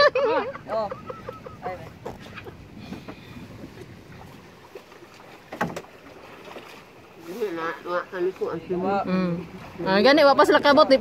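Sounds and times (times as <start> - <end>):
water washing around boat hull: 0.0 - 11.0
sharp knock on wooden boat: 5.5 - 5.9.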